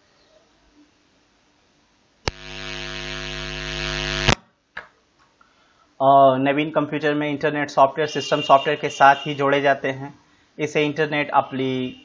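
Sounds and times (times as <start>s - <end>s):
electrical mains hum: 2.1s - 5.0s.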